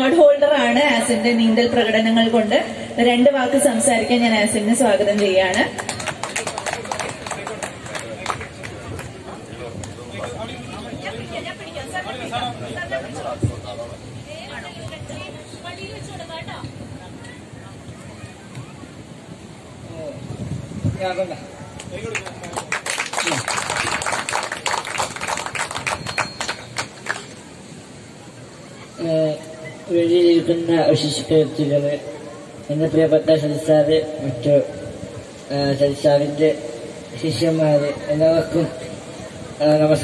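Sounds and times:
crowd clapping: 5.1s - 10.4s, 21.7s - 27.5s
audience handclaps: 5.2s - 9.2s, 21.8s - 27.4s.

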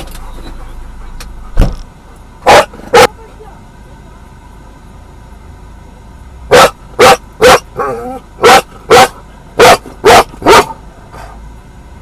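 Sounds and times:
dog barking loudly: 2.4s - 3.1s, 6.5s - 10.8s.

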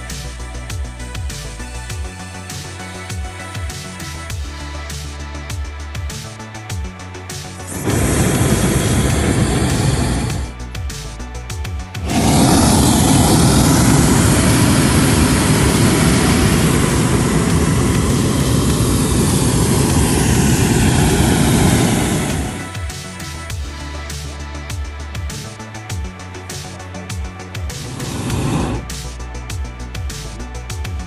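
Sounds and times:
background music: 0.0s - 31.0s
propane burner blasts: 7.6s - 10.7s, 12.0s - 23.6s, 27.7s - 29.2s.

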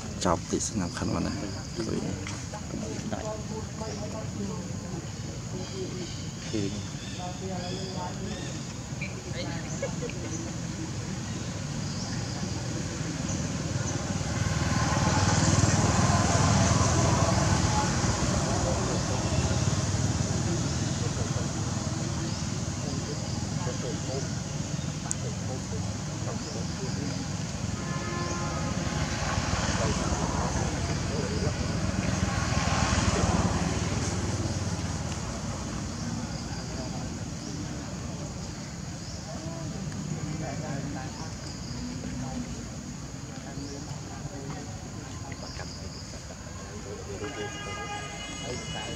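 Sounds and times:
indistinct voices: 0.0s - 47.6s.

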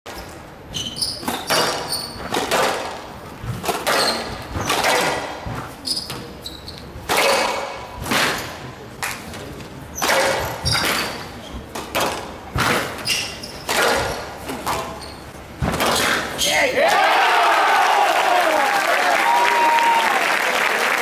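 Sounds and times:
shoes squeaking on court floor: 0.1s - 2.6s, 3.4s - 7.6s, 9.2s - 16.6s
squash ball hitting rackets and walls: 0.1s - 16.5s.

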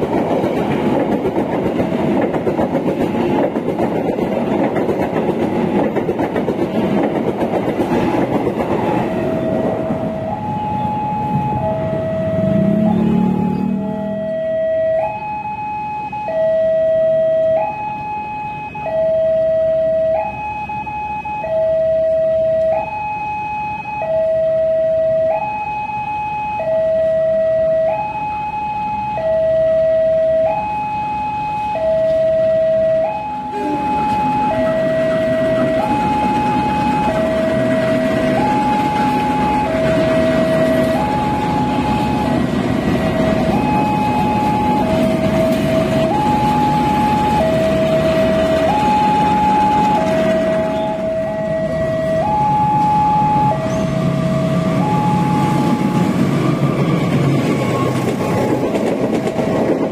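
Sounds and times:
two-tone electronic warning alarm: 0.0s - 59.4s
locomotive engine rumble: 33.4s - 59.9s.

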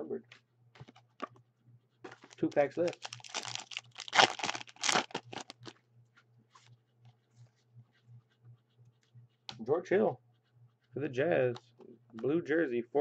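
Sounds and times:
foil wrapper crinkling: 2.1s - 5.7s.

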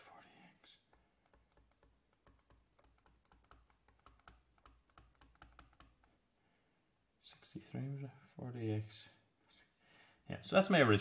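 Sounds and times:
stylus tapping on tablet screen: 0.8s - 6.2s.

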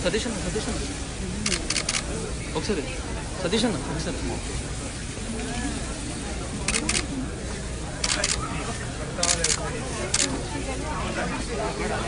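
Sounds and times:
camera shutter clicking: 1.5s - 2.0s, 6.7s - 7.1s, 8.0s - 8.4s, 9.2s - 10.3s.

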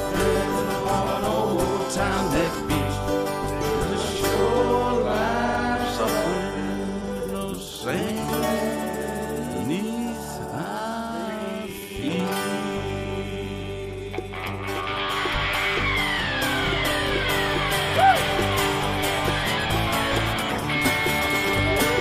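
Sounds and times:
blues guitar with bending notes: 0.0s - 22.0s.

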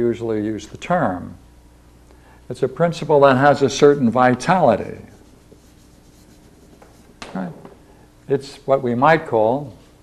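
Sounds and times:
chalk tapping and scratching: 4.2s - 7.3s.

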